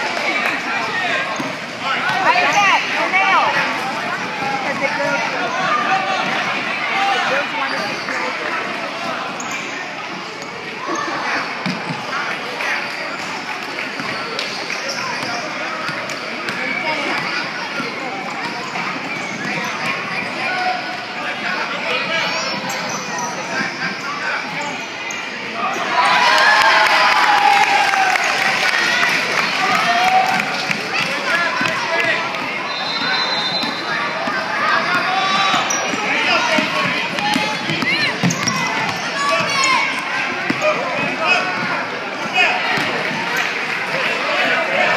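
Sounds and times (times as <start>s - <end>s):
voices echoing in hall: 0.0s - 44.9s.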